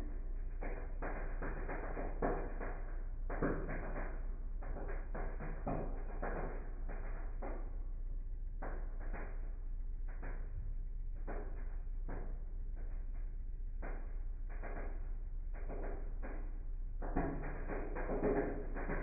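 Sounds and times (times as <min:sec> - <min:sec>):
slowed arc crackle bursts: 0:00.0 - 0:19.0.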